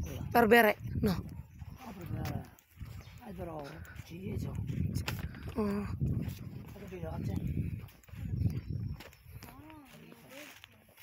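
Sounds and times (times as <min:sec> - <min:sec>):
quiet voices talking: 0:00.0 - 0:11.0.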